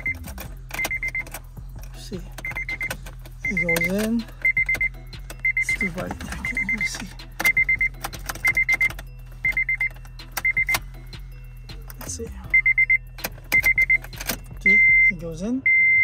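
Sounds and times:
key clicking in ignition lock: 0.0s - 5.5s, 7.3s - 10.9s, 13.2s - 14.6s
dashboard warning chime beeping: 0.0s - 16.0s.

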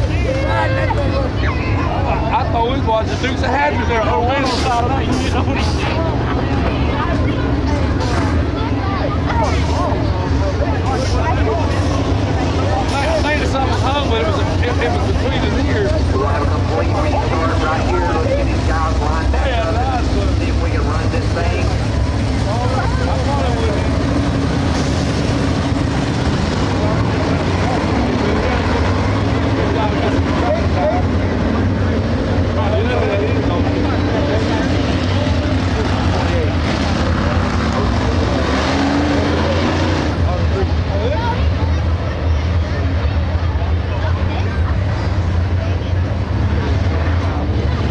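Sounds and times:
people's voices: 0.0s - 47.9s
race car engines rumbling: 0.0s - 47.9s.

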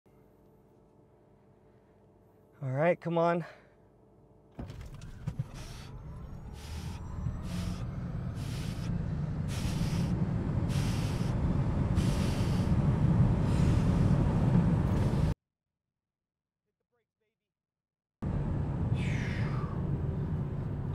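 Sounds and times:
road and wind roar: 4.6s - 15.4s, 18.2s - 20.9s
hiss pulses: 5.5s - 15.4s.

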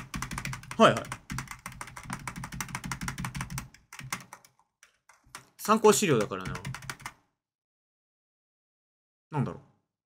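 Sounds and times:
rapid keyboard typing: 0.0s - 7.2s.

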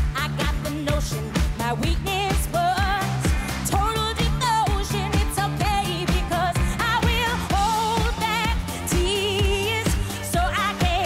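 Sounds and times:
bass: 0.0s - 11.0s
steady drum beat: 0.0s - 11.0s
woman singing with vibrato: 0.0s - 11.0s.

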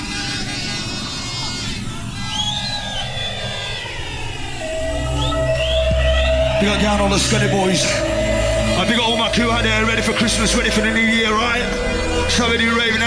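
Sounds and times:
sweeping pitch effect: 2.2s - 13.0s
electronic dance music: 4.6s - 13.0s.

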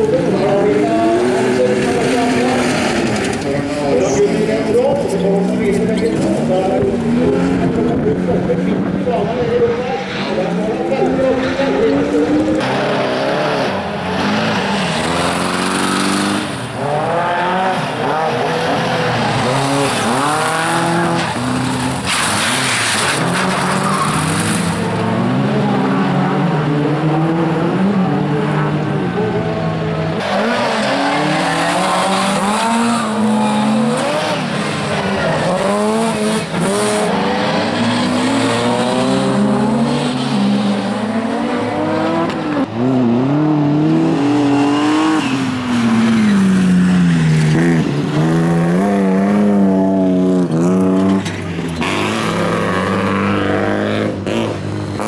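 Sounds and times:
race car engines revving: 0.0s - 55.0s.

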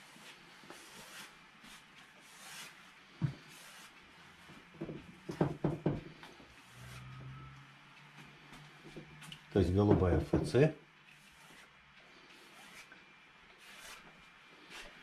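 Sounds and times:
brush scraping on canvas: 0.0s - 4.7s, 11.1s - 15.0s.

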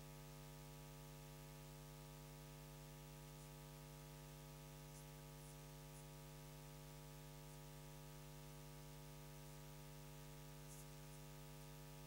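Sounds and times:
faint static hiss: 0.0s - 12.0s
low electrical hum: 0.0s - 12.0s.

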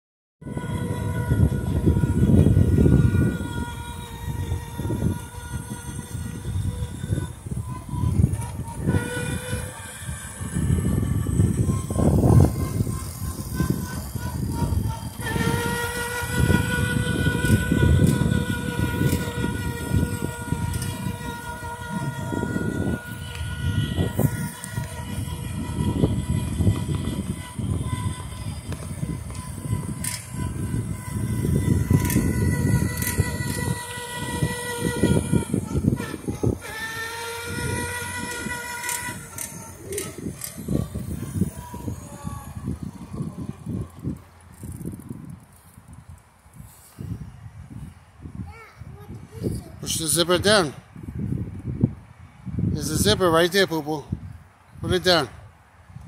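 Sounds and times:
hard wheels rumbling on asphalt: 0.4s - 46.0s
electric motor whine: 0.4s - 48.0s, 52.6s - 54.0s.

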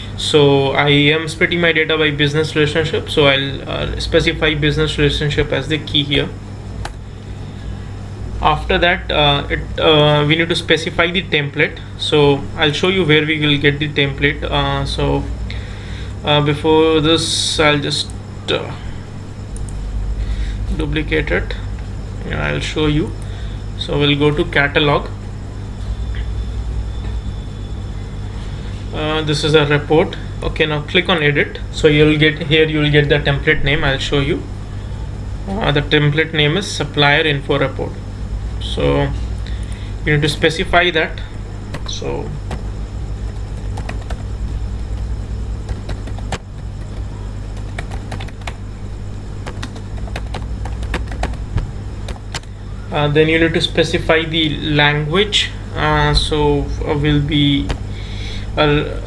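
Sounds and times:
steady low hum: 0.0s - 59.0s.

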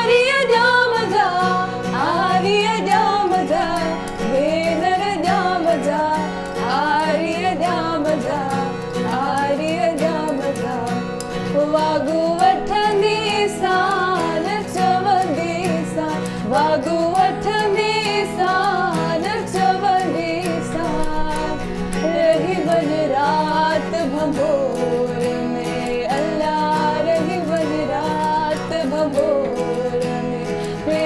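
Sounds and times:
acoustic guitar strumming: 0.0s - 31.0s
woman singing: 0.0s - 31.0s.

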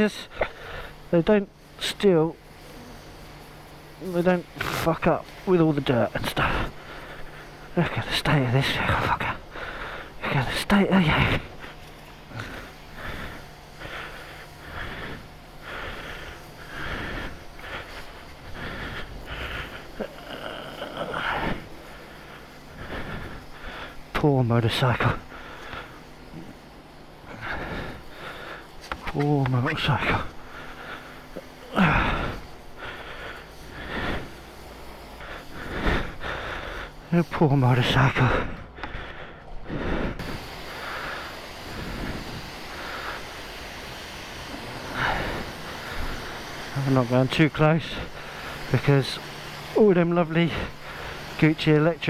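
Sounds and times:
steady low hum: 0.0s - 52.0s
jet wash spraying water: 0.9s - 38.3s, 40.2s - 52.0s
pressure washer spraying: 27.3s - 37.8s, 40.2s - 52.0s.

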